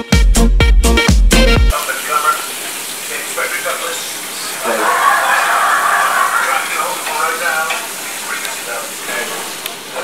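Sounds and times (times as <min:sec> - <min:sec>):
bacon sizzling in a pan: 0:01.7 - 0:10.0
wavering voice-like pitched sounds: 0:04.6 - 0:07.0.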